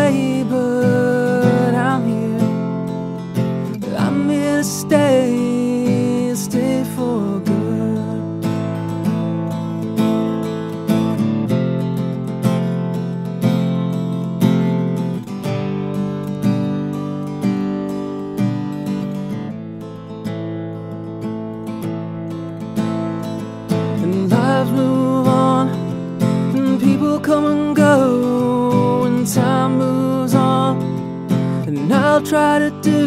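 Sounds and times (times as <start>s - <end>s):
strummed acoustic guitar: 0.0s - 33.0s.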